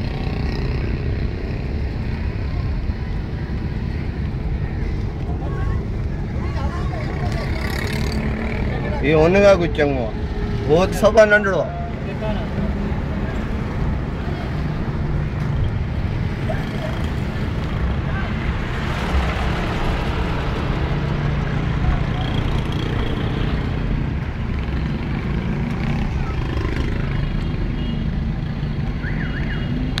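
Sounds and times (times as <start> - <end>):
car engine and road noise: 0.0 - 30.0.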